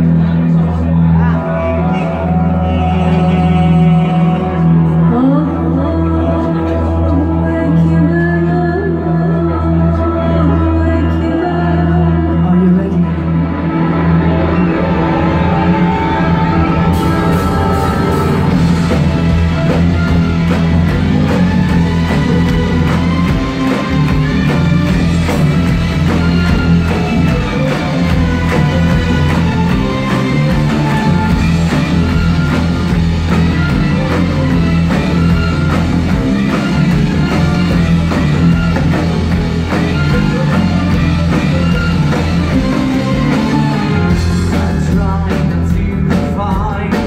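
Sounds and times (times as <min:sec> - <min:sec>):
live metal band playing: 0:00.0 - 0:07.8, 0:11.9 - 0:47.0
cymbal beats: 0:13.6 - 0:35.2.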